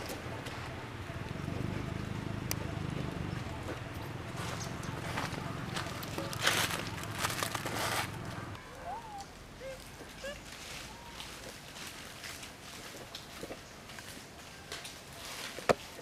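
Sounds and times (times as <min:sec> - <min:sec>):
dry leaves rustling and crackling: 0:03.6 - 0:16.0.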